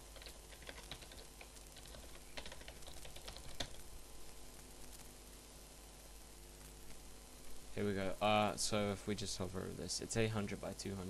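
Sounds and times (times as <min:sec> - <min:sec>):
faint low hum: 0:00.0 - 0:11.0
keyboard typing clicks: 0:00.1 - 0:03.8.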